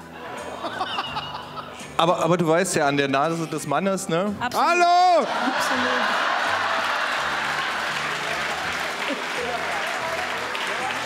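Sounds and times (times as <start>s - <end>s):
audience applauding: 5.3s - 11.0s.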